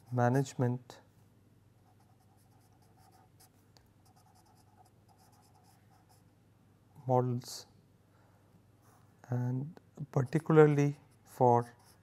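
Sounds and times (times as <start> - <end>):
pen scratching on paper: 1.9 - 6.2, 10.2 - 12.0.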